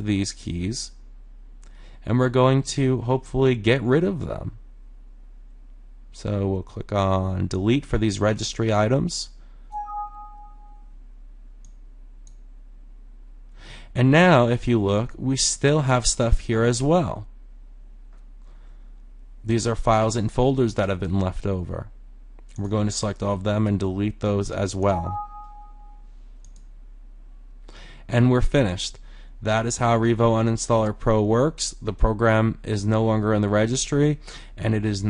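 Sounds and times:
low steady hum: 0.0s - 35.0s
two-tone computer chime: 9.7s - 10.9s, 24.9s - 26.0s.

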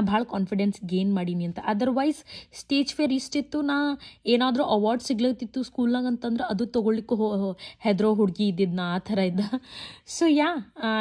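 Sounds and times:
person talking: 0.0s - 11.0s.

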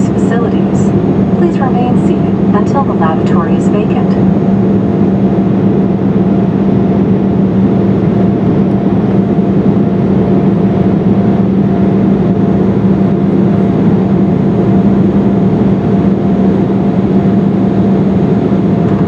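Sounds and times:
airplane cabin engine noise: 0.0s - 19.0s
steady low hum: 0.0s - 19.0s.

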